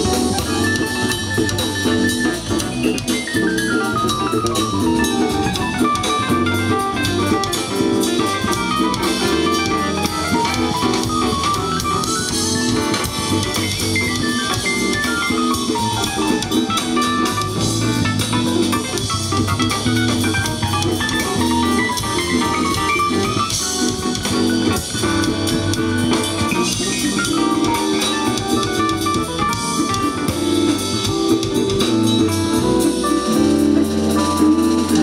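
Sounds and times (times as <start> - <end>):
drum kit: 0.0 - 35.0.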